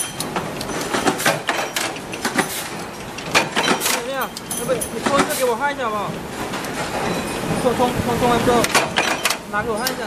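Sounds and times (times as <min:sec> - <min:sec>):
metal knocks and clanks: 0:00.0 - 0:05.4, 0:08.5 - 0:10.0.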